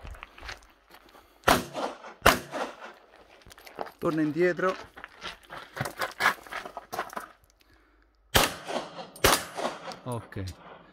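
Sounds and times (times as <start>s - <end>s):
quick footsteps on gravel: 0.0s - 1.4s, 2.7s - 7.6s
handgun shot with echo: 1.5s - 2.8s, 8.4s - 10.0s.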